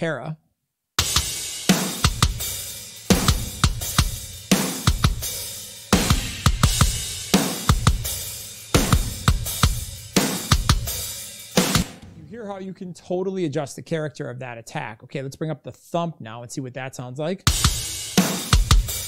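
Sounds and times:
rock drum kit groove: 1.0s - 12.6s, 17.5s - 19.0s.

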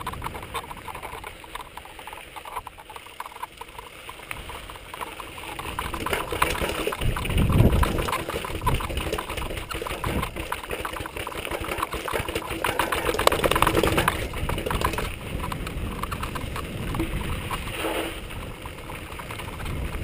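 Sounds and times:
mountain bike rattling over rocks: 0.0s - 20.0s.

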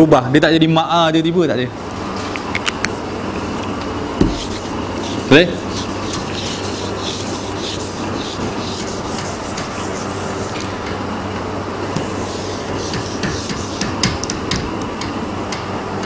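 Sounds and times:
steady low hum: 1.6s - 16.0s
eraser rubbing on whiteboard: 4.2s - 10.7s, 12.0s - 14.2s.

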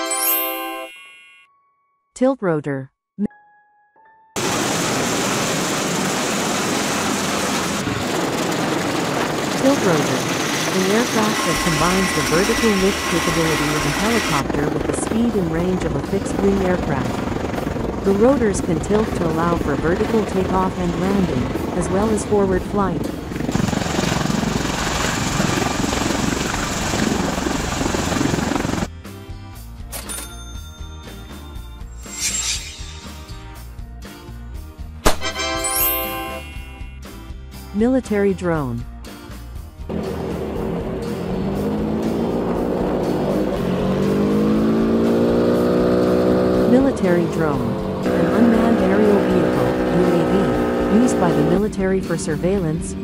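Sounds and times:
background music: 0.0s - 4.4s, 9.6s - 23.5s, 28.2s - 53.0s
aircraft rotor and turbine noise: 4.4s - 28.9s, 39.9s - 53.0s.

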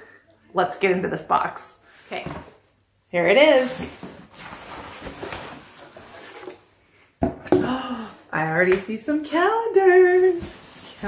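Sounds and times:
cardboard rustling and scraping: 3.4s - 6.8s, 9.8s - 11.0s.

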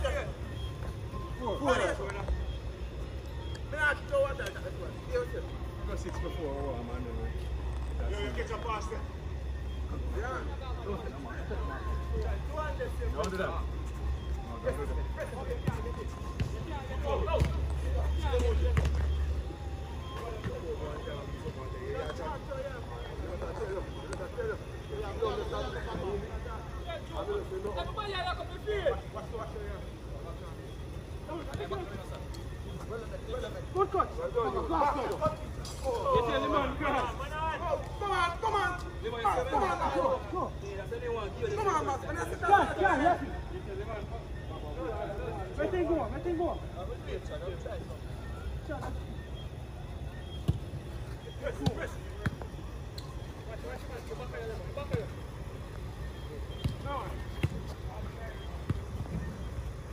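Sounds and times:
distant shouts of footballers: 33.7s - 43.5s.

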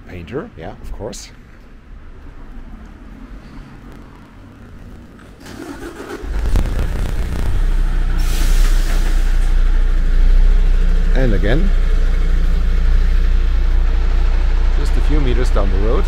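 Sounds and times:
engine starting and idling: 5.3s - 9.6s
brief hiss: 5.6s - 9.5s.

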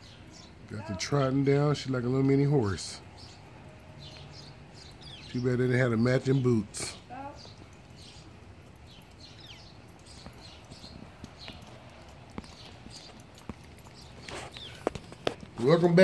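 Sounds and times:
dog boots tapping on paving: 10.3s - 15.8s.

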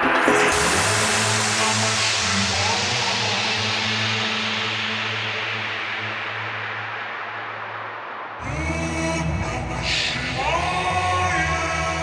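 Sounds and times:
bright hiss wash: 0.0s - 5.7s
low bass drone: 8.4s - 12.0s.

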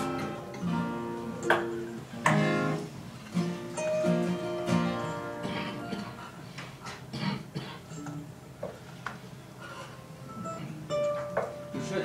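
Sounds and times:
acoustic guitar chords ringing: 0.0s - 6.3s, 10.2s - 12.0s.

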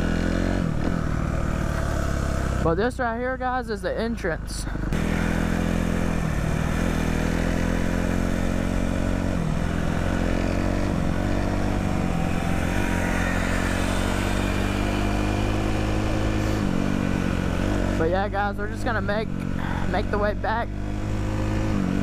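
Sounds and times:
dirt bike engine running: 0.0s - 22.0s.

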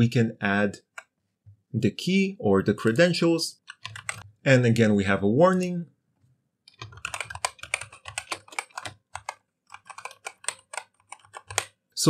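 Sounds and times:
typing on computer keyboard: 3.6s - 4.3s, 6.7s - 11.8s.

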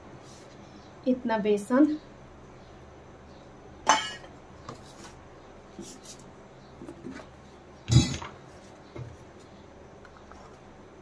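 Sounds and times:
steel kitchenware clinking: 3.9s - 4.3s
steel plate clanging on stone: 3.9s - 4.3s.

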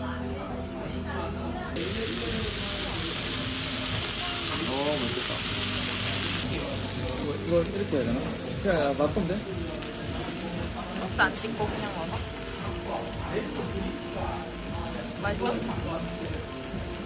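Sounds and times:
background music: 0.0s - 17.0s
steak sizzling in a skillet: 1.8s - 17.0s.

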